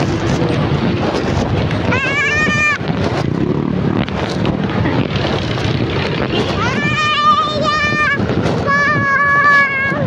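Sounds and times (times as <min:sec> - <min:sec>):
motorcycles and scooters passing: 0:00.0 - 0:08.7
city street traffic: 0:00.0 - 0:10.0
wind buffeting microphone: 0:00.0 - 0:10.0.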